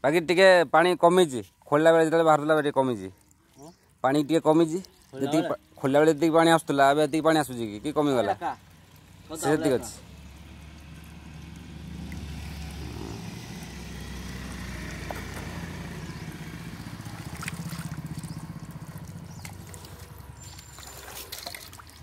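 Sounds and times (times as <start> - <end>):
water gurgling into bucket: 8.6 - 22.0.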